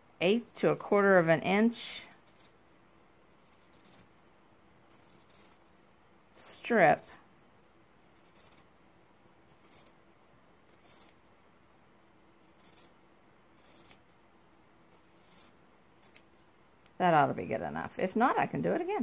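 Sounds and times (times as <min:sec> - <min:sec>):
scissors snipping fabric: 0:04.9 - 0:05.6, 0:13.5 - 0:14.0.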